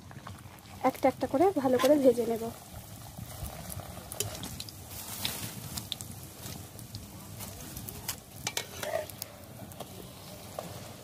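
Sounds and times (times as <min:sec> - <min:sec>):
bread frying in hot oil: 0:00.0 - 0:11.0.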